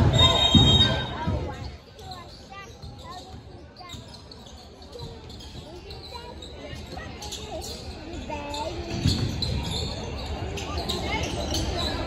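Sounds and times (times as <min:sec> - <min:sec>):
voices echoing in gym: 0:00.0 - 0:12.0.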